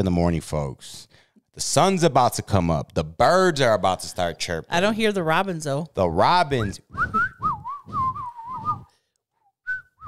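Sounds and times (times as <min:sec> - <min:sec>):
person whistling a warbling tune: 0:06.8 - 0:08.9, 0:09.6 - 0:10.0.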